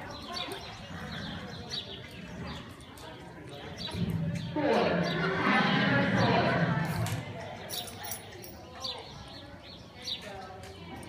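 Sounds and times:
indistinct voices in arena: 0.0 - 11.0.

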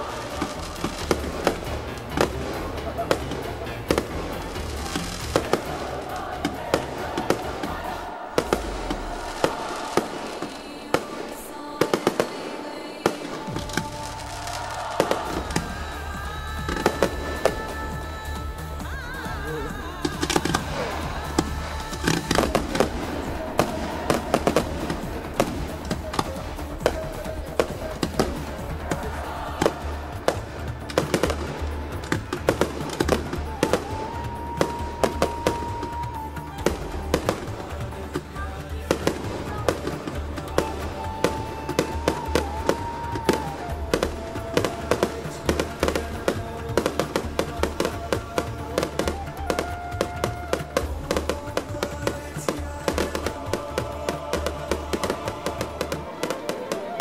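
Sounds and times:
fireworks bangs and crackles: 0.0 - 57.0
music playing: 0.0 - 57.0.

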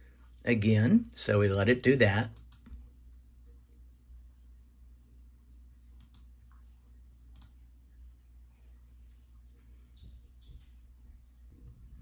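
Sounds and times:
low steady hum: 0.0 - 12.0
computer mouse clicks: 2.4 - 2.8, 6.0 - 6.3, 7.3 - 7.6.

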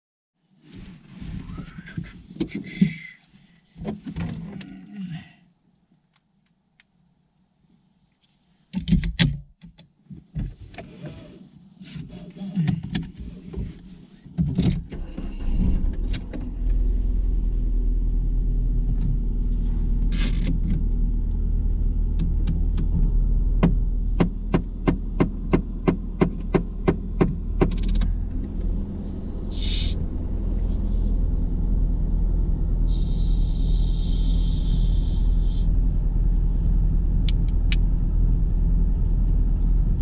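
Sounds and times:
car engine idling: 15.0 - 40.0
short hiss-like burst: 29.5 - 30.0.

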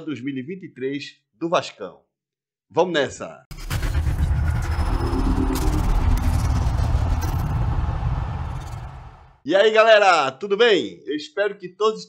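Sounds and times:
sharp hits: 3.5 - 9.4
whooshing sound effects: 3.5 - 9.4.

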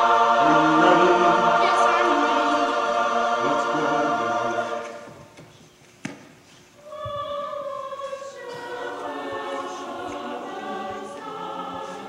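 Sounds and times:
opera singers holding chord: 0.0 - 5.2, 6.8 - 12.0.

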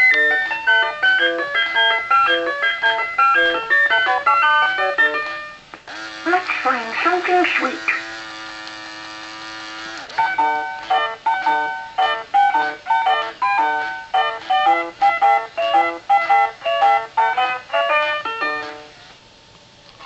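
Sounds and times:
electronic toy tune: 7.5 - 18.9.

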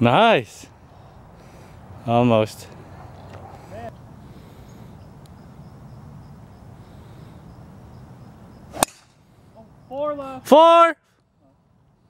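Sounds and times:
low background noise: 0.0 - 12.0
golf club striking ball: 8.7 - 9.2.

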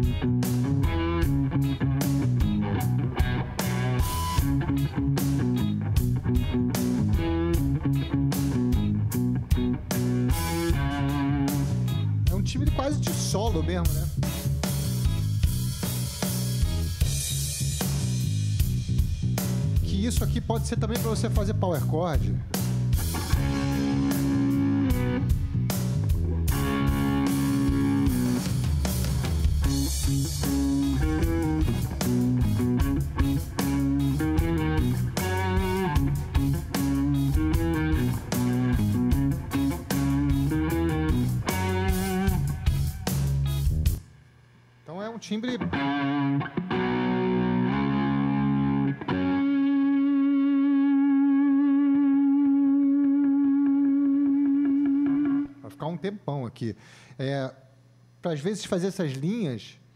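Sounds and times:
overdriven electric guitar: 0.0 - 12.9, 22.5 - 44.0, 45.6 - 55.6
backing track drums and bass: 0.0 - 44.1.

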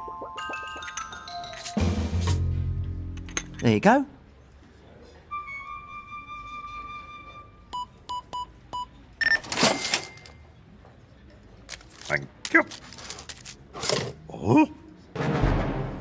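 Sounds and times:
held flute-like note: 5.3 - 7.7.

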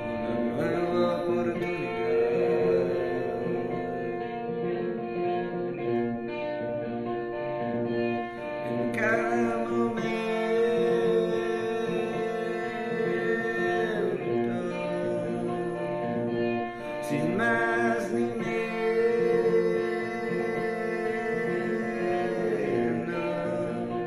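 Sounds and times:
man singing: 0.0 - 5.5, 8.2 - 24.0
electric guitar chords: 0.0 - 24.0.

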